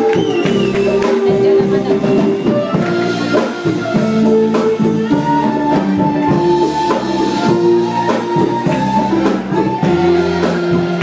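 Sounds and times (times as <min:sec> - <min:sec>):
drum kit: 0:00.0 - 0:11.0
guitar: 0:00.0 - 0:11.0
live band playing: 0:00.0 - 0:11.0.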